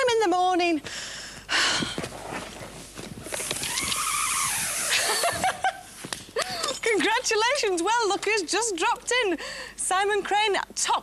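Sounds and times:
rope descent rig hissing and whirring: 3.2 - 5.7.

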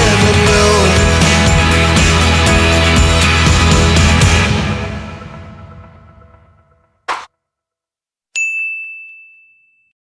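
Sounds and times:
bell-like ding chime: 8.4 - 10.0.

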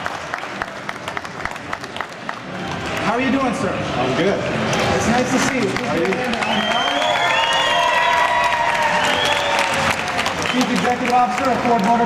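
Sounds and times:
audience applauding: 0.0 - 3.0, 5.1 - 12.0.

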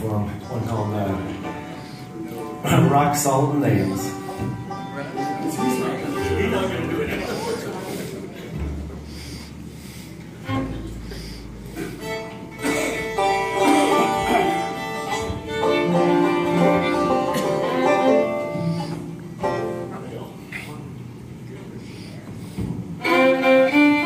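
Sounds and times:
bluegrass band playing: 0.0 - 24.0.

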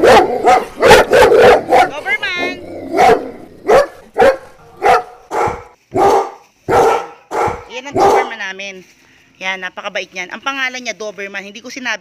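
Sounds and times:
dog barking: 0.0 - 8.4.

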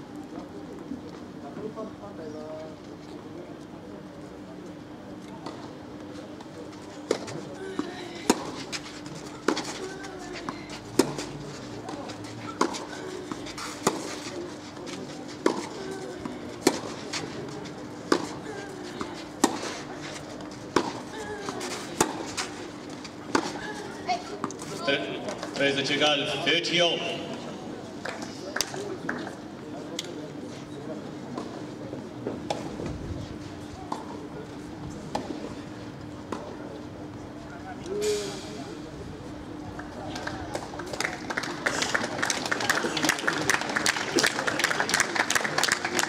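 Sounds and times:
murmur of spectators' voices: 0.0 - 46.0
tennis ball hit with rackets: 11.0 - 11.3.

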